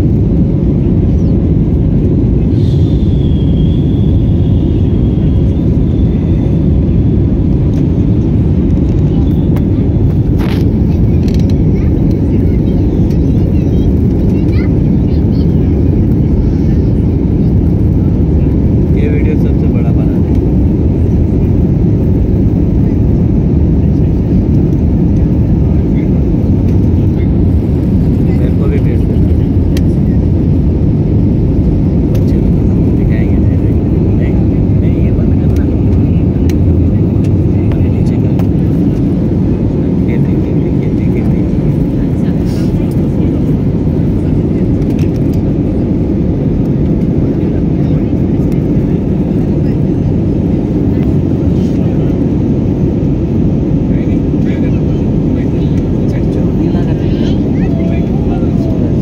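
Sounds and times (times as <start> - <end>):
airliner cabin engine rush: 0.0 - 59.0.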